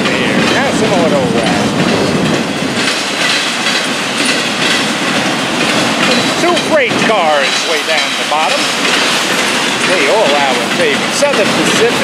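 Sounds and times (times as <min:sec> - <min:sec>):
freight train rolling past: 0:00.0 - 0:12.0.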